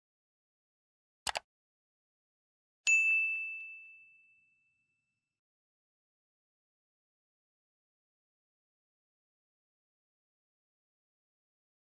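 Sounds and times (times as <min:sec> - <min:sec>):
notification bell ding: 0:02.9 - 0:05.0.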